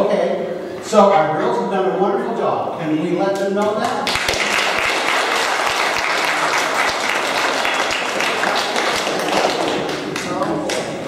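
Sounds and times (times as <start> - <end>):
crowd applauding: 4.0 - 11.0.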